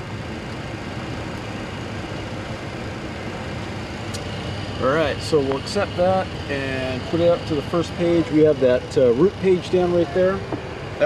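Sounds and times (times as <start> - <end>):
cockpit ventilation rush: 0.0 - 11.0.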